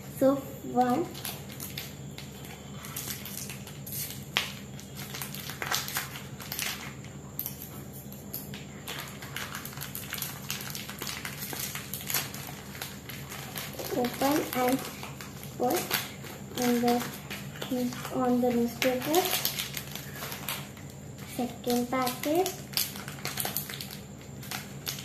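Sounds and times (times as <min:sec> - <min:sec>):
plastic biscuit packet crinkling: 0:00.8 - 0:25.0.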